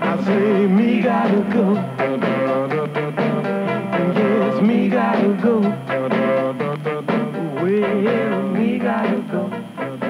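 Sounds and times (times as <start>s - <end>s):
oldies music on am radio: 0.0s - 10.0s.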